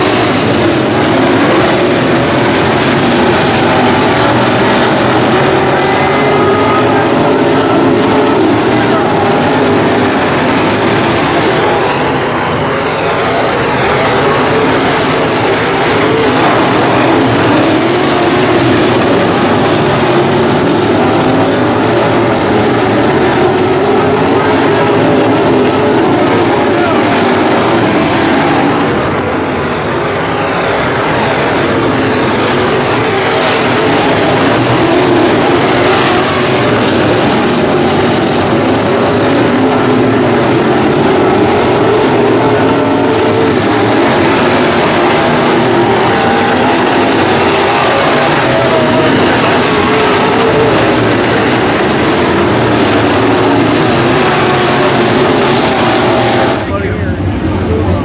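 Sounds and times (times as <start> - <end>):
race car engines droning: 0.0 - 58.0.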